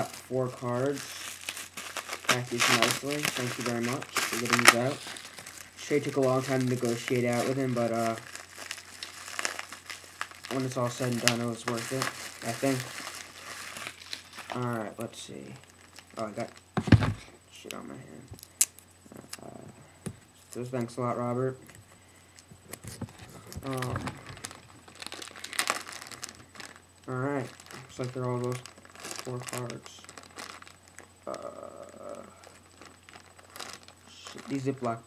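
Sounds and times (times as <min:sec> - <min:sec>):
plastic bag crinkling: 0:00.0 - 0:17.2, 0:22.9 - 0:35.0.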